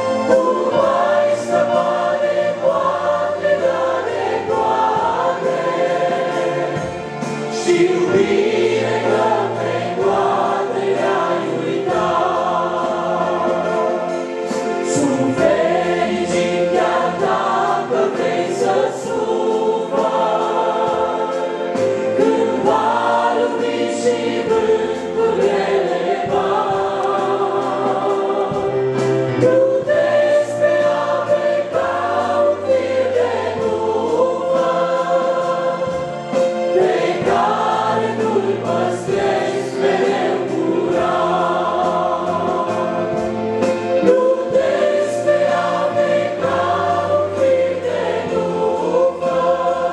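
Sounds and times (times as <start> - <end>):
congregation singing a hymn: 0.0 - 49.9.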